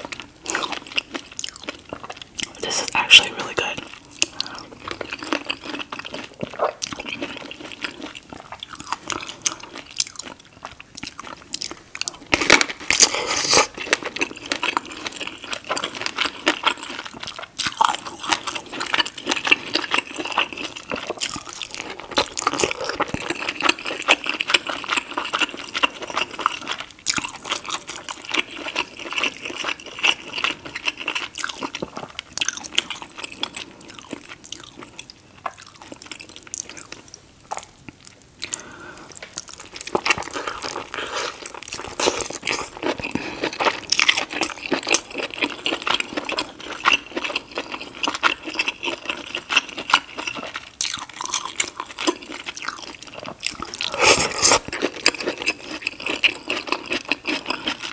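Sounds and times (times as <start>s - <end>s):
biting and chewing food: 0.0s - 57.9s.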